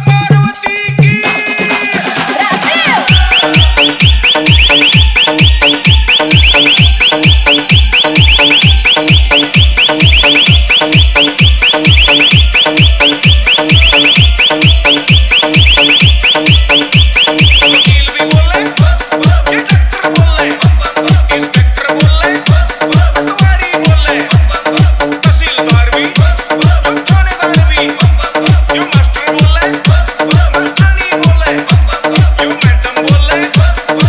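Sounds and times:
kick drum beat with deep bass: 0.0s - 34.0s
high-pitched alarm-like synth: 3.1s - 18.0s.

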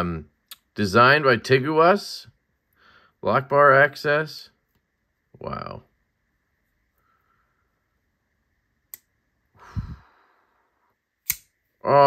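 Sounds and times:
breathy sigh: 9.6s - 10.8s
folding knife blade clicks: 11.2s - 11.5s.

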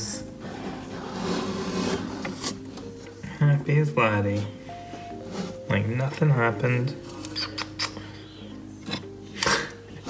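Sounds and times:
soft background music: 0.0s - 10.0s
scraping rubbing noise: 0.4s - 2.6s.

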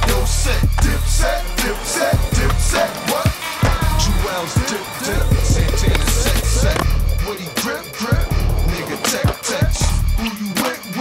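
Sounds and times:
hip hop music with heavy bass: 0.0s - 11.0s
skateboard on concrete: 1.6s - 10.0s.

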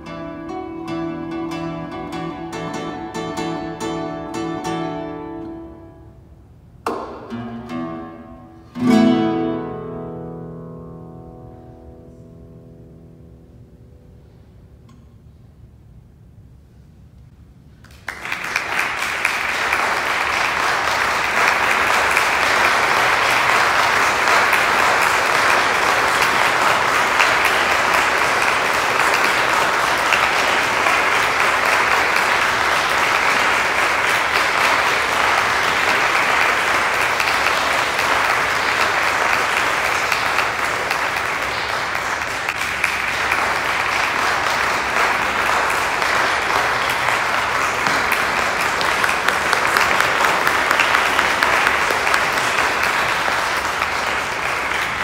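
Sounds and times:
audience applauding: 17.8s - 55.0s.

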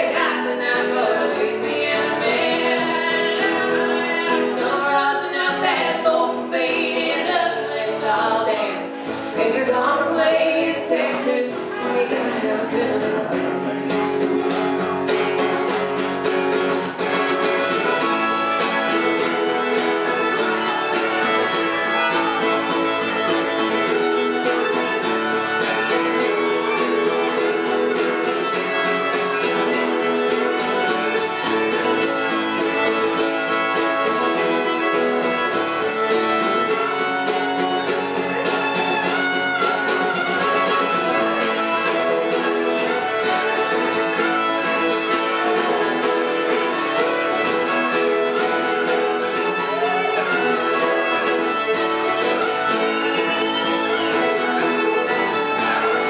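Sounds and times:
fast fiddle playing: 0.0s - 56.0s
strummed acoustic guitar: 0.0s - 56.0s.

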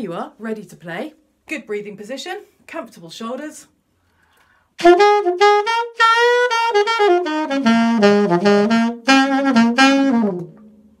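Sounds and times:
saxophone phrase: 4.8s - 10.6s.

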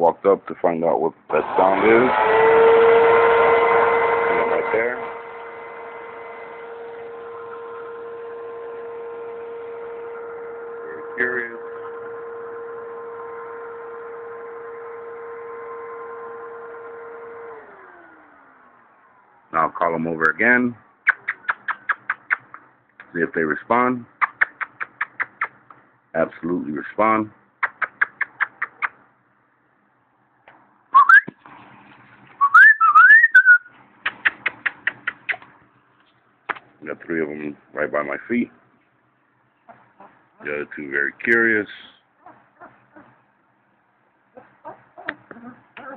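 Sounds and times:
vacuum cleaner motor whining: 1.3s - 19.5s
person making kissing sounds: 21.0s - 22.6s, 24.2s - 25.7s, 27.6s - 29.0s, 34.0s - 35.5s
person whistling: 31.0s - 31.4s, 32.4s - 33.7s.

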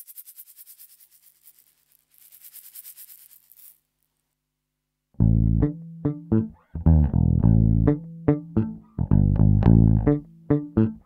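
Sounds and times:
low steady hum: 5.2s - 11.0s.

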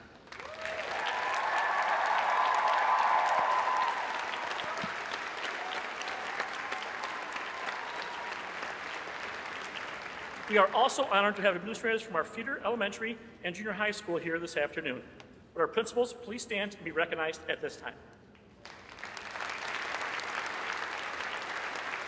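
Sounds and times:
large audience applauding: 0.0s - 10.8s, 18.6s - 22.0s.

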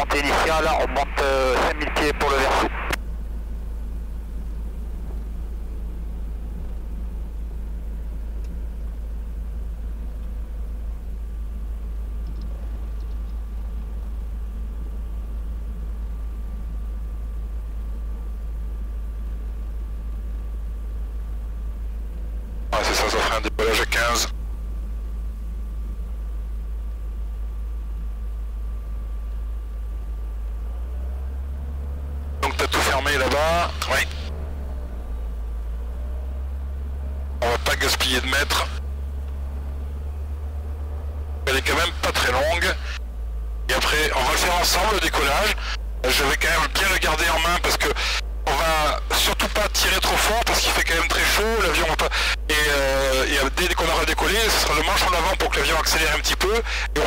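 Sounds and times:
voices over headset radio: 0.0s - 3.0s, 22.7s - 24.4s, 32.4s - 34.3s, 37.4s - 38.8s, 41.4s - 43.0s, 43.7s - 57.0s
steady low drone: 0.0s - 57.0s.

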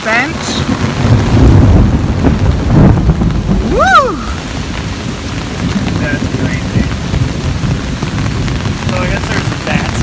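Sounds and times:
low rumble: 0.0s - 10.0s
rain on an umbrella: 0.0s - 10.0s.

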